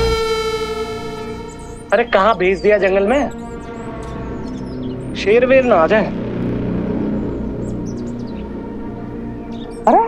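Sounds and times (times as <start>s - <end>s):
held synthesizer note: 0.0s - 2.2s.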